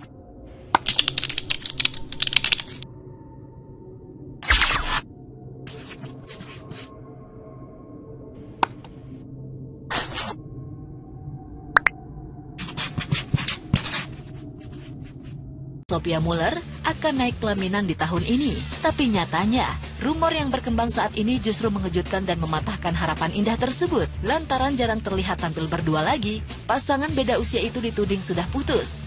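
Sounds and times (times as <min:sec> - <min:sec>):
keyboard typing: 0:00.8 - 0:02.8
marker pen scratching: 0:05.7 - 0:06.9, 0:12.6 - 0:15.3.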